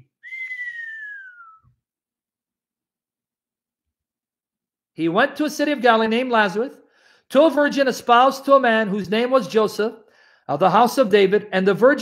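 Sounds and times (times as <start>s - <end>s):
person whistling falling note: 0.0s - 1.8s.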